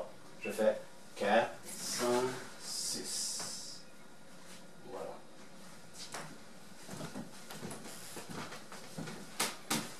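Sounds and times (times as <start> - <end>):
steady background hiss: 0.0 - 9.9
footsteps on wooden floor: 6.1 - 9.9.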